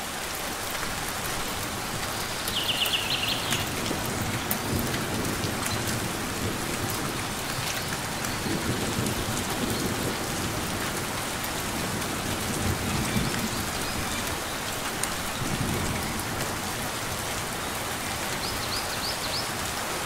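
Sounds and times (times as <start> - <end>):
rain falling on foliage: 0.0 - 20.0.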